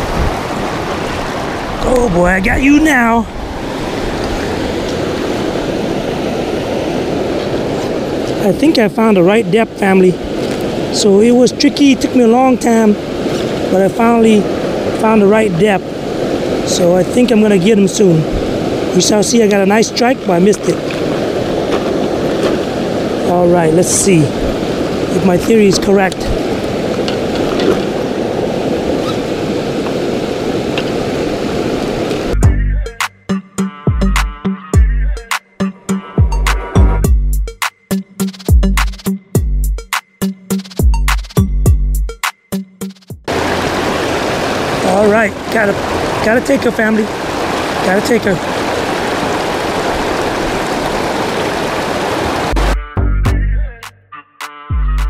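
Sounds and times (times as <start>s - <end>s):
river water rushing over rocks: 0.0s - 32.4s, 43.3s - 52.6s
music with heavy bass beat: 32.4s - 43.3s, 52.6s - 54.0s, 54.7s - 55.0s.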